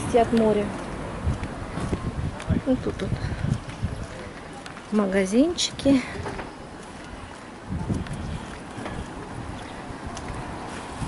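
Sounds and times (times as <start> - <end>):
faint street ambience: 0.0 - 11.0
wind buffeting microphone: 0.0 - 11.0.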